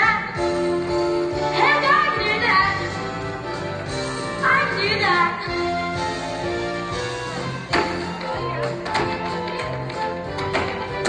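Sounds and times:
show tune backing track: 0:00.0 - 0:11.0
tap shoes on stage floor: 0:07.6 - 0:11.0.

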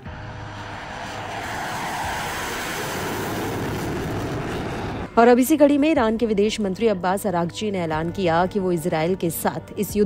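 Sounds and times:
jet engine rushing: 0:00.0 - 0:05.2.

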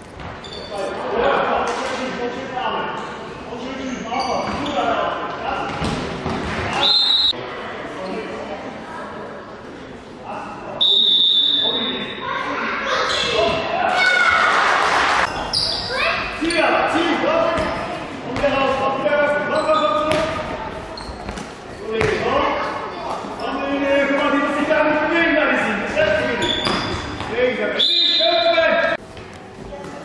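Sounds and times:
ball bouncing on hall floor: 0:05.7 - 0:06.8, 0:17.5 - 0:17.8, 0:20.0 - 0:22.4, 0:26.4 - 0:27.4.

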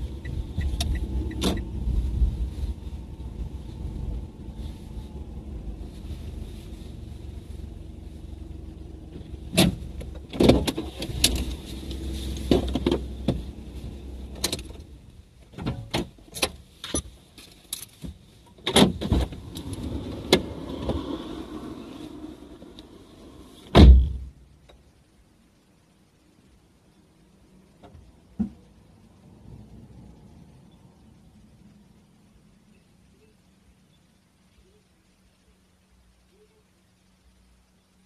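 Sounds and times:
car engine and road rumble: 0:00.0 - 0:38.0
clicks and knocks inside car: 0:09.5 - 0:11.5.

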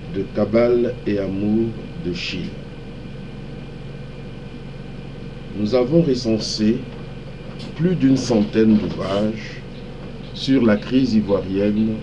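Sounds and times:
faint thin whine: 0:00.0 - 0:12.0
low background hum: 0:00.0 - 0:12.0.

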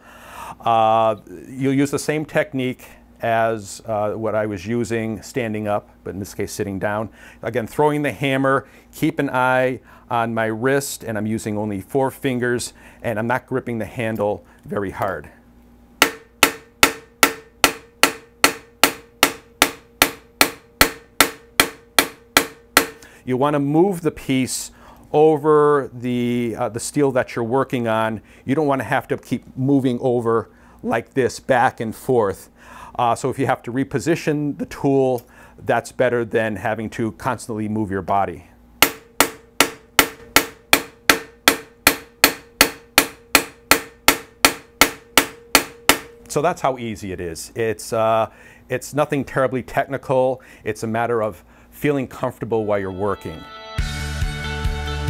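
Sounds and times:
hammer striking metal spoon: 0:16.0 - 0:23.0, 0:38.8 - 0:46.2.

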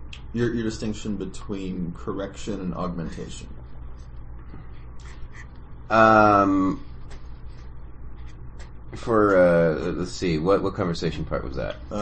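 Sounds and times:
low hum: 0:00.0 - 0:12.0
faint breathing: 0:04.4 - 0:05.6.

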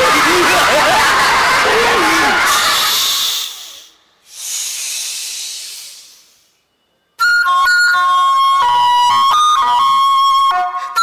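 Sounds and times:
long hisses: 0:02.5 - 0:06.6.

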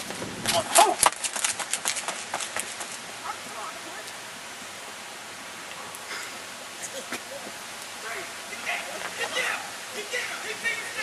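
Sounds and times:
running footsteps: 0:00.0 - 0:03.2
outdoor hiss: 0:00.0 - 0:11.0
distant shouts: 0:08.0 - 0:11.0.

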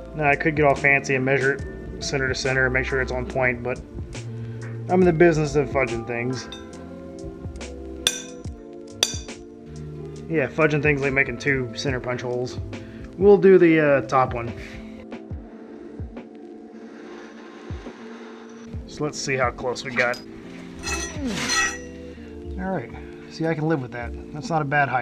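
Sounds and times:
metal bars clinking and scraping: 0:06.4 - 0:06.7, 0:08.1 - 0:09.4, 0:19.9 - 0:22.1
hammer striking center punch on steel: 0:08.1 - 0:09.4.

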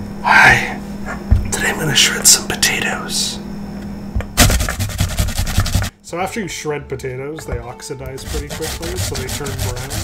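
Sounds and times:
potato scraping on metal grater: 0:04.5 - 0:05.9, 0:08.2 - 0:10.0.

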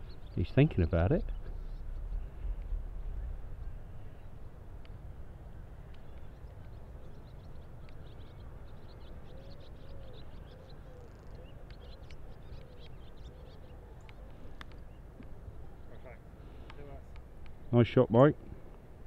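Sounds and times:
small birds chirping: 0:00.0 - 0:18.1
wind on microphone: 0:01.2 - 0:04.4.

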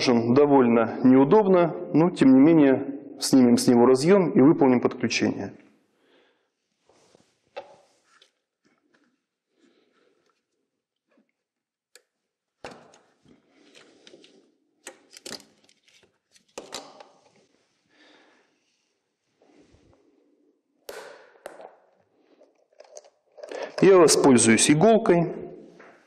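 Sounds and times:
hands handling plastic connectors: 0:10.2 - 0:17.5, 0:21.0 - 0:23.9.

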